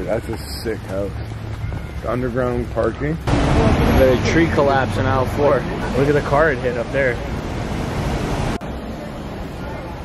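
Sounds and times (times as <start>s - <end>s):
city street traffic: 0.0s - 10.0s.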